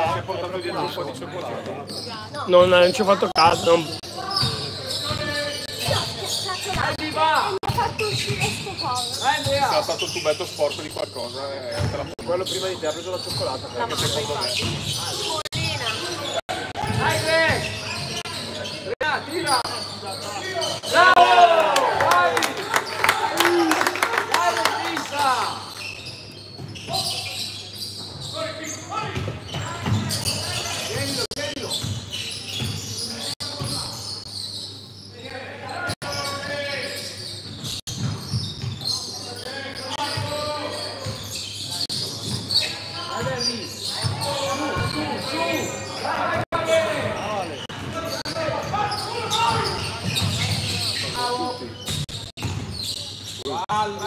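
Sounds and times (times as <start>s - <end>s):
players and spectators voices: 0.0s - 54.0s.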